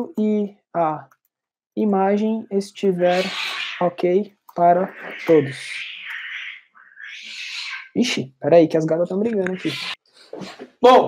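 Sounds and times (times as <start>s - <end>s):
cats fighting hissing yowl: 3.0s - 3.8s, 4.9s - 7.9s, 9.5s - 10.6s.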